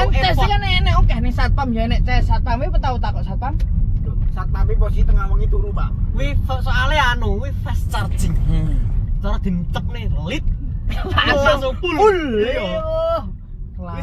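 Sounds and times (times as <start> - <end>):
car cabin rumble: 0.0 - 14.0
men talking and laughing: 10.6 - 13.0.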